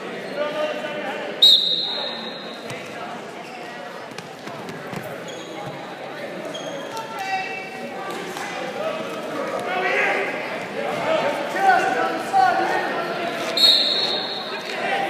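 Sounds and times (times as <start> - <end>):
shrill whistle: 1.4 - 2.6, 13.6 - 14.6.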